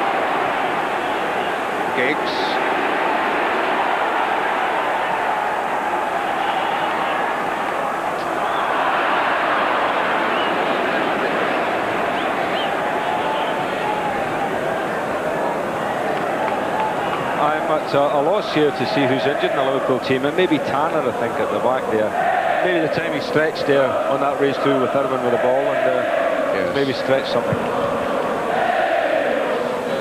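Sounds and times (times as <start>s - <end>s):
stadium crowd din: 0.0s - 30.0s.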